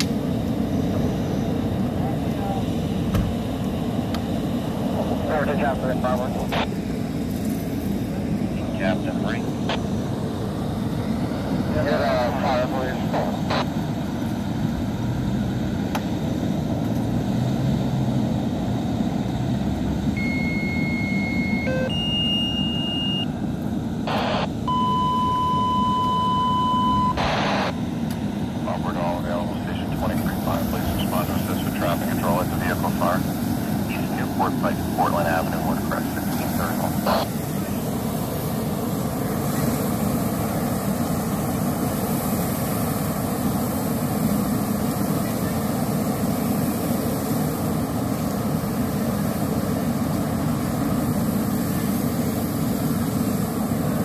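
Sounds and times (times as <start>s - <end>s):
fire engine pump droning: 0.0s - 54.0s
faint radio voices: 0.9s - 2.9s, 4.7s - 7.2s, 8.0s - 10.0s, 11.5s - 14.2s, 24.1s - 24.5s, 27.1s - 27.8s, 28.5s - 38.7s, 44.8s - 46.0s
radio static bursts: 5.0s - 6.8s, 8.5s - 9.9s, 11.7s - 13.9s, 24.1s - 24.6s, 27.0s - 27.8s, 28.6s - 37.9s
radio alert tones: 11.8s - 13.8s, 20.2s - 23.3s, 24.1s - 27.8s, 28.7s - 33.2s, 33.8s - 37.8s
fire hose spraying water: 29.4s - 54.0s.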